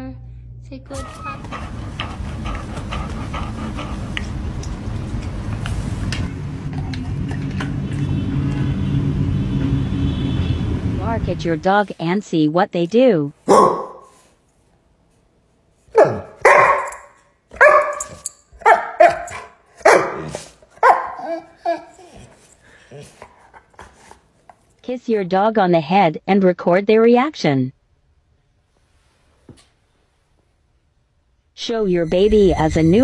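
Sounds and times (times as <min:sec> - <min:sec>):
steady low rumble: 0:00.0 - 0:12.0
dog making short sounds: 0:00.9 - 0:04.4
dog barking: 0:13.4 - 0:14.1, 0:15.9 - 0:21.5.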